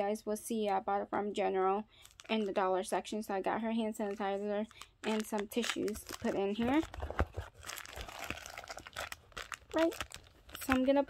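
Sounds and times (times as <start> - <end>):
plastic packaging crinkling: 2.0 - 2.7, 4.0 - 11.0.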